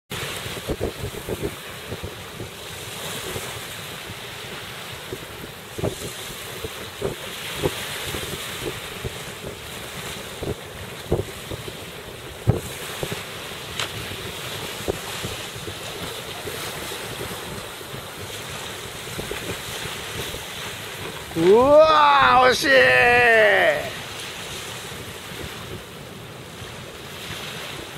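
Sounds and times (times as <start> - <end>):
sea waves and surf: 0.1 - 27.9
wind blowing across microphone: 0.1 - 27.9.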